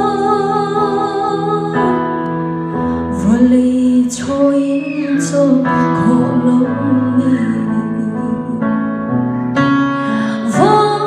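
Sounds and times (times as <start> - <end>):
woman singing into a microphone: 0.0 - 9.0, 10.0 - 11.0
sustained keyboard accompaniment: 0.0 - 11.0.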